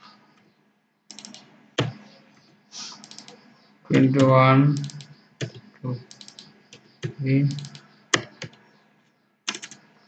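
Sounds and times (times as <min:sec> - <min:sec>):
keyboard keys tapping: 0:01.1 - 0:02.2, 0:03.0 - 0:08.8, 0:09.5 - 0:09.9
man talking: 0:03.9 - 0:05.0, 0:05.8 - 0:06.1, 0:07.1 - 0:07.7.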